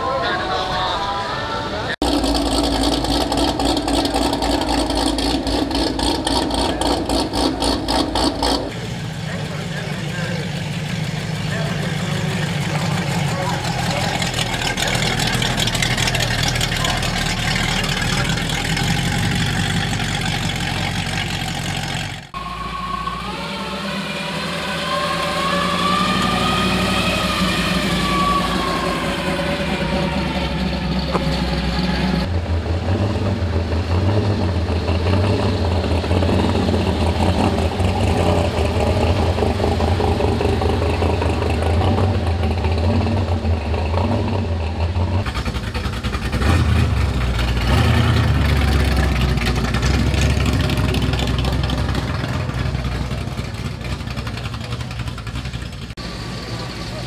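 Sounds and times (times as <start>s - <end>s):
car engines driving past: 0.0s - 57.0s.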